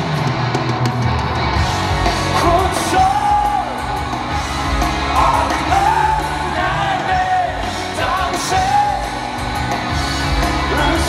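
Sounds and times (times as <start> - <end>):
live rock band: 0.0 - 11.0
stadium crowd: 0.0 - 11.0.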